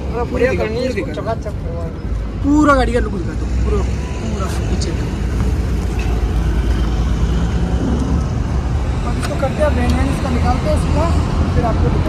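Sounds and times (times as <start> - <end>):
road traffic noise: 0.0 - 12.0.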